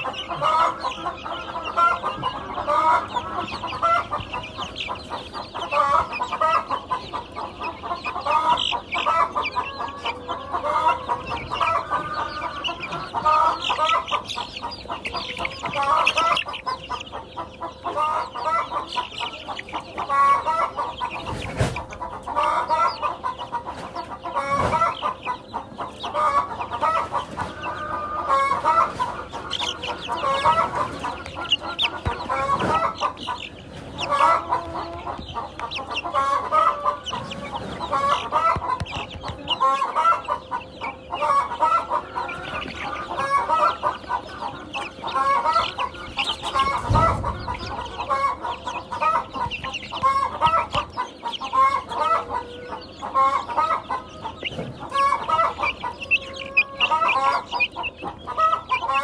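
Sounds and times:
chicks peeping: 0.0s - 59.0s.

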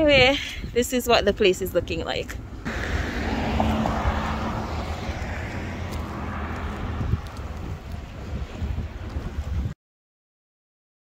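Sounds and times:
wind rumbling on microphone: 0.0s - 9.8s
road traffic going by: 1.0s - 9.7s.

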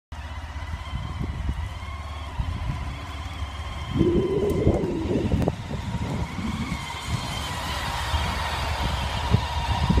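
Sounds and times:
motorcycle engine at low revs: 0.1s - 10.0s.

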